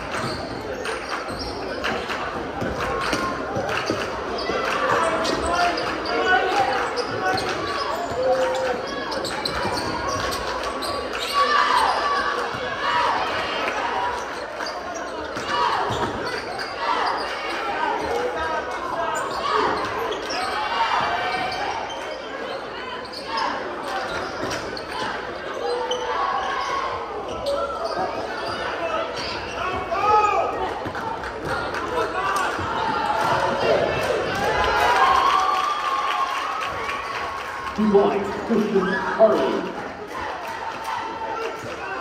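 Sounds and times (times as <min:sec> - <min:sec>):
crowd chatter and calls: 0:00.0 - 0:42.0.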